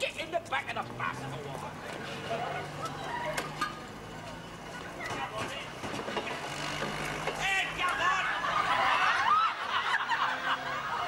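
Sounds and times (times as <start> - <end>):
bus diesel engine idling: 0.0 - 11.0
studio audience laughter: 8.0 - 11.0.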